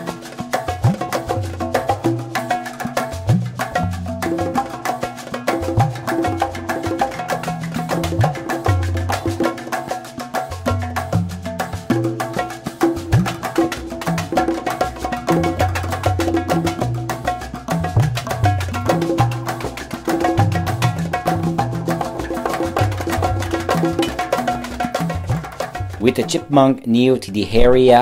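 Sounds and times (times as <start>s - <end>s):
percussive beat: 0.0s - 26.6s.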